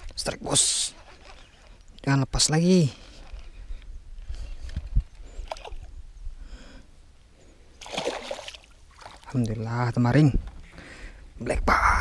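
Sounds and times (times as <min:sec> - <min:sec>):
fish splashing in water: 0:07.8 - 0:09.3.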